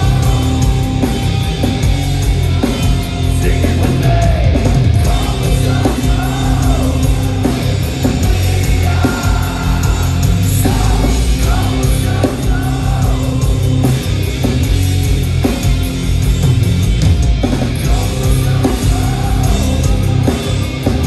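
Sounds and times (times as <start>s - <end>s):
bass guitar: 0.0s - 21.0s
distorted electric guitars: 0.0s - 21.0s
drums: 0.0s - 21.0s.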